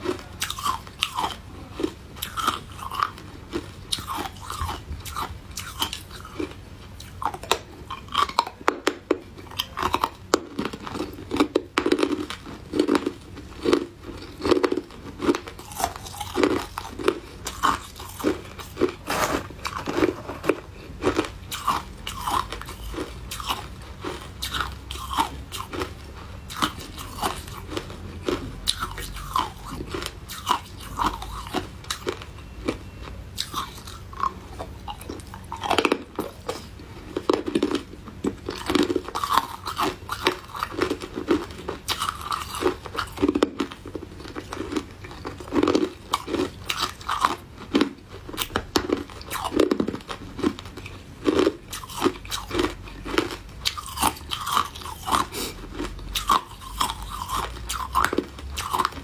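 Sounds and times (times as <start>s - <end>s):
crunching and chewing ice: 0.0s - 59.0s.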